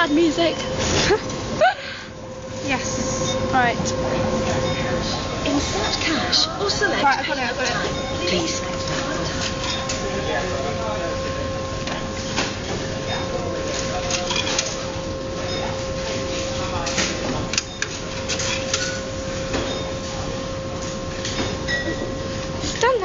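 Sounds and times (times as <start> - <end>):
electronic hum: 0.0 - 23.0.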